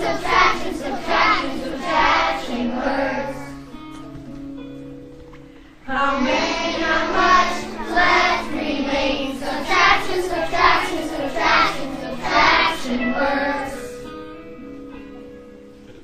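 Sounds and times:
children singing in unison: 0.0s - 3.8s, 5.9s - 14.1s
musical accompaniment: 0.0s - 16.0s.

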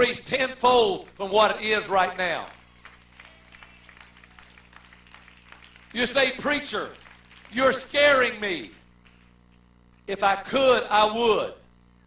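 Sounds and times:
man preaching: 0.0s - 2.6s, 5.9s - 8.8s, 10.1s - 11.6s
low steady hum: 0.0s - 12.0s.

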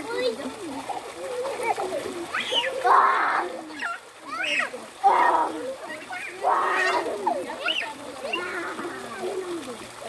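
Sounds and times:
swimmers chattering and calling out: 0.0s - 10.0s
loud water splash: 0.4s - 9.7s.

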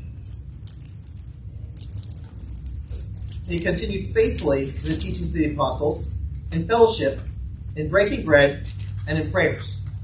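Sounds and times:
low room hum: 0.0s - 10.0s
paper pages rustling: 2.9s - 5.3s, 8.4s - 9.1s.

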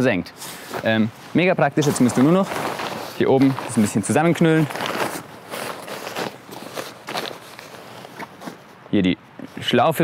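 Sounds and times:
fabric rustling and crumpling: 0.6s - 8.8s.

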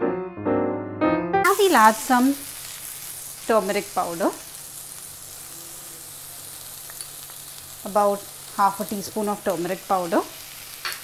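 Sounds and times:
vegetables sizzling in hot oil: 1.5s - 11.0s.

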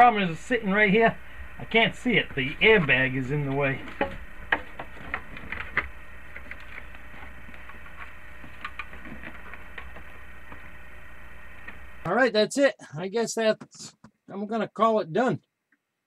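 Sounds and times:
low steady hum: 0.0s - 15.4s.

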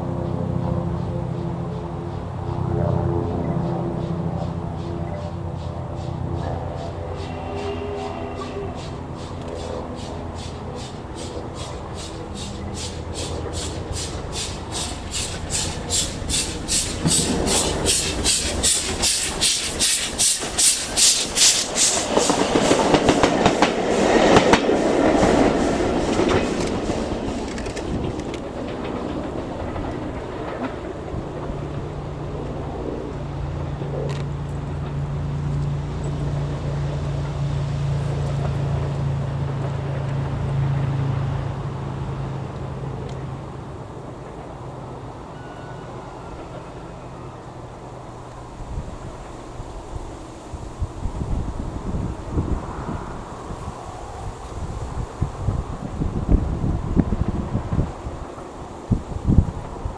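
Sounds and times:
steam locomotive exhaust chuffs: 0.0s - 33.8s
train wheels rumbling on rail: 0.0s - 59.9s.

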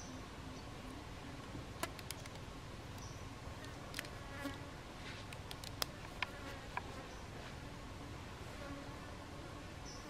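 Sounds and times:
small sharp clicks: 1.8s - 4.6s, 5.3s - 6.9s.

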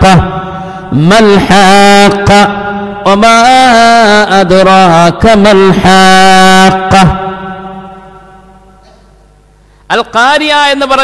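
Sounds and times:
man chanting melodic recitation: 0.0s - 8.5s.

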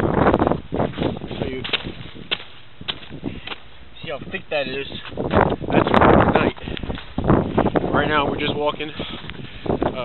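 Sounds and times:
boot footsteps on icy road: 0.2s - 3.7s.

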